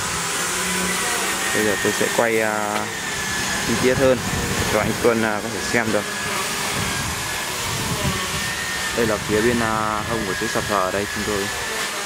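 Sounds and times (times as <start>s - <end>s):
steady rushing noise: 0.0s - 11.5s.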